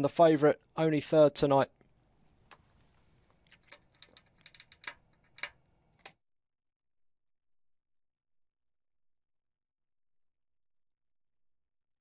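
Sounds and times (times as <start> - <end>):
faint clicks and clinks: 3.4 - 6.1.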